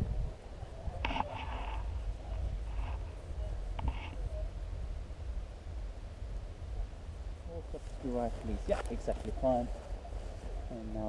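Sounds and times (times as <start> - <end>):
wind buffeting microphone: 0.0 - 11.0
faint rustling: 0.6 - 11.0.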